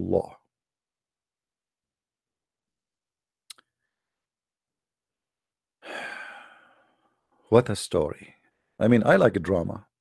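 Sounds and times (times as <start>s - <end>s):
man sighing: 5.8s - 7.0s.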